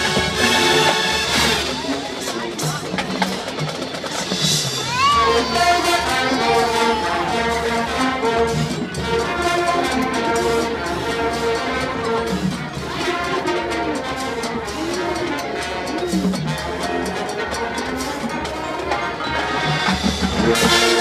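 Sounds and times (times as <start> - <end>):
marching percussion: 0.0 - 21.0
brass section playing: 5.0 - 21.0.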